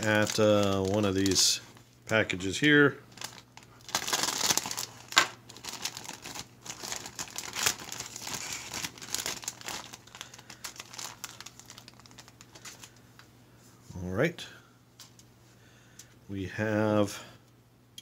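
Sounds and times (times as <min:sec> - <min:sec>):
plastic bag crinkling and tearing: 0:00.0 - 0:02.2, 0:03.1 - 0:13.0.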